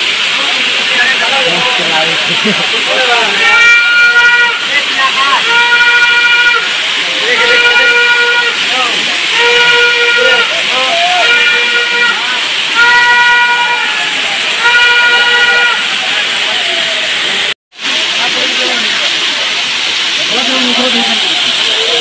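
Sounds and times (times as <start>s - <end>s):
waterfall rushing: 0.0s - 22.0s.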